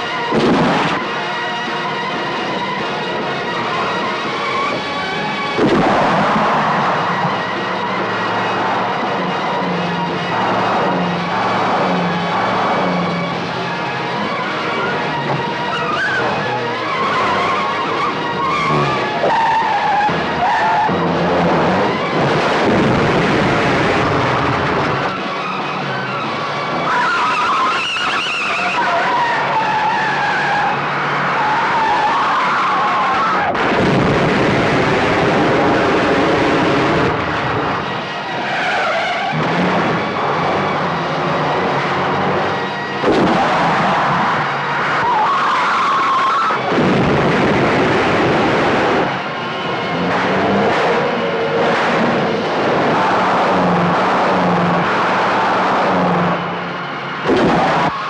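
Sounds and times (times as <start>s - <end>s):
car engines revving: 0.0s - 58.0s
tyres squealing: 24.9s - 33.6s, 37.8s - 46.8s.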